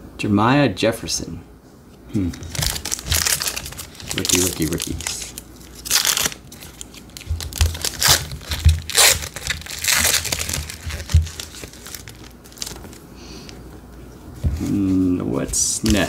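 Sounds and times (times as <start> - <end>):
foil wrapper crinkling and tearing: 2.2 - 13.1, 15.7 - 16.0.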